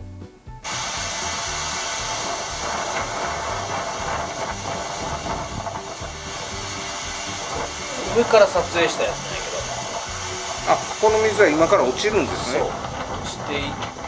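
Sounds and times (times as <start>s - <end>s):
background music: 0.0s - 14.0s
waterfall rushing: 0.6s - 14.0s.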